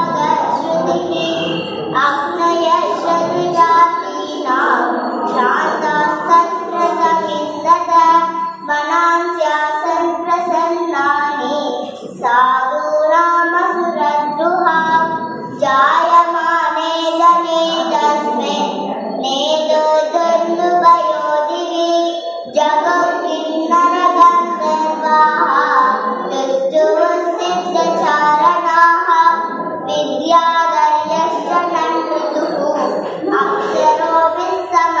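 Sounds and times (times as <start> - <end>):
girl chanting melodically: 0.0 - 35.0.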